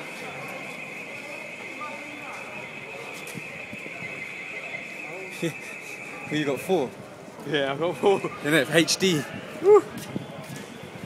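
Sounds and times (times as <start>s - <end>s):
distant shouting voices: 0.0s - 7.0s
high-pitched ringing: 0.2s - 7.0s.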